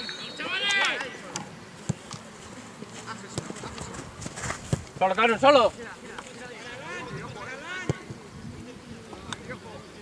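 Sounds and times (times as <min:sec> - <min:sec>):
faint open-air background noise: 0:00.0 - 0:10.0.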